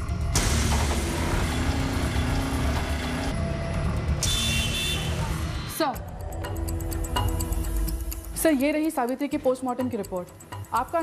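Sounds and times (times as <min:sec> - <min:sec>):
dramatic background music: 0:00.0 - 0:11.0.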